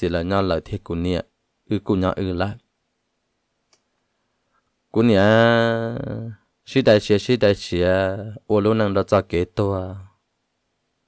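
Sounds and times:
person speaking: 0.0s - 2.7s, 4.9s - 10.2s
faint click: 3.7s - 4.7s.

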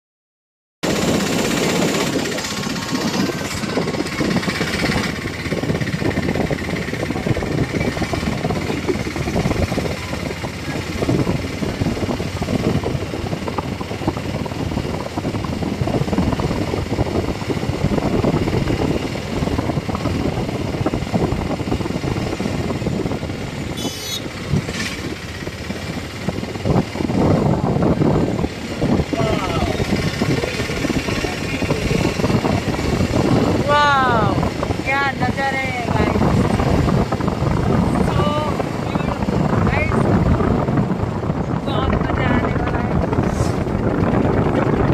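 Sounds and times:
vehicle driving on road: 0.8s - 44.9s
wind on microphone: 0.8s - 44.9s
short high tone: 23.8s - 24.3s.

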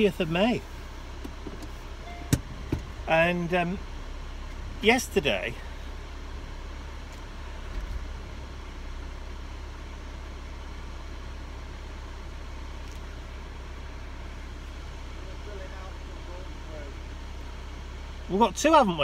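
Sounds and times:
car cabin rumble: 0.0s - 19.0s.

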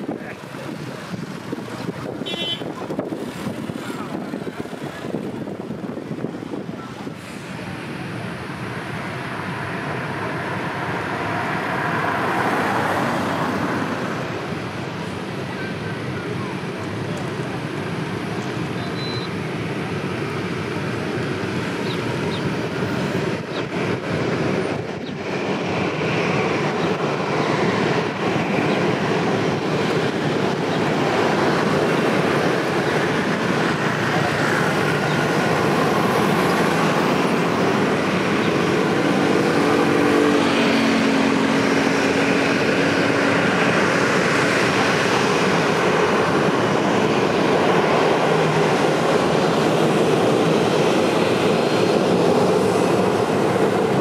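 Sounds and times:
jet engines roaring: 0.0s - 54.0s.

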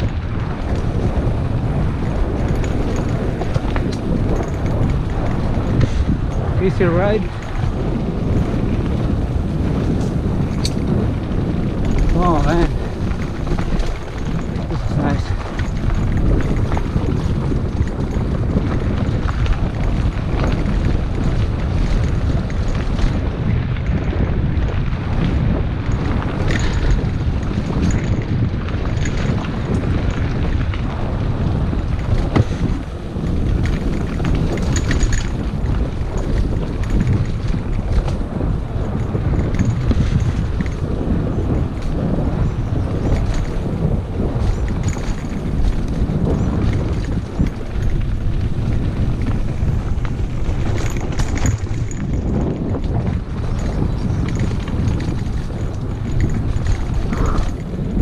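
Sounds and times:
bike knocks and rattles: 0.0s - 58.0s
wind buffeting microphone: 0.0s - 58.0s.

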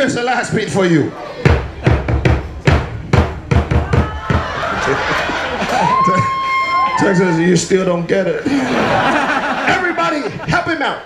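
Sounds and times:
crowd noise: 0.0s - 11.0s
drums struck in uneven beat: 1.4s - 6.3s.

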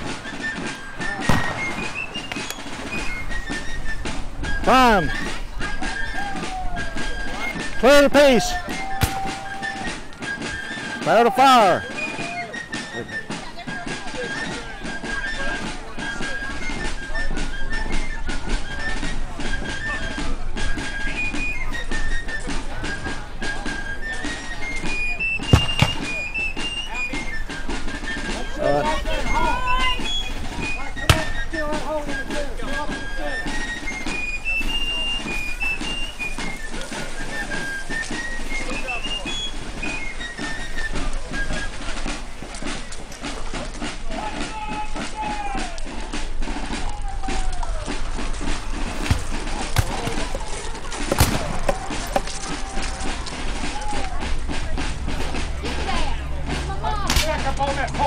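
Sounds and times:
high piping melody: 0.0s - 6.2s, 20.8s - 43.0s
voices talking: 0.0s - 58.0s.

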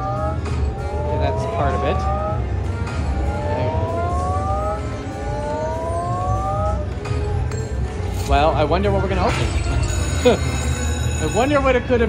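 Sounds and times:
rising electronic tone: 0.0s - 7.0s.

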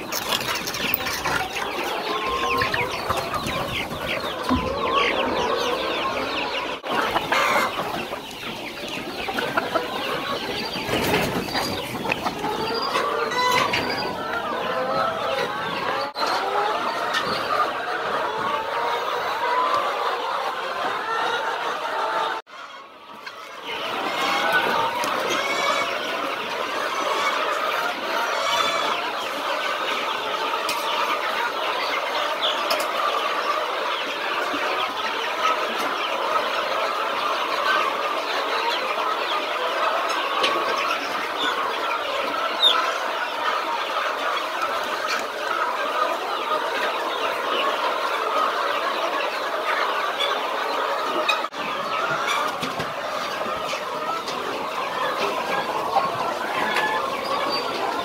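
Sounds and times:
chickens clucking: 0.0s - 58.0s.

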